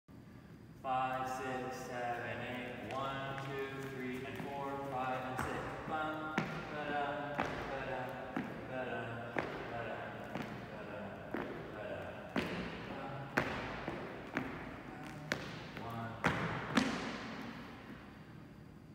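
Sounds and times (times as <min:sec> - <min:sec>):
dancers' steps on hardwood floor: 0:02.7 - 0:18.1.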